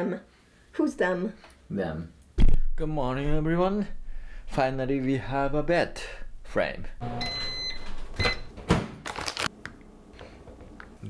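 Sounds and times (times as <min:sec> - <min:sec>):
microwave beeps: 0:07.0 - 0:08.5.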